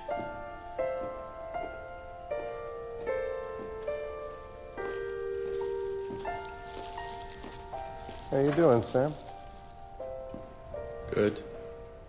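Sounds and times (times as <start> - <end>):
slow soft piano music: 0.0 - 12.0.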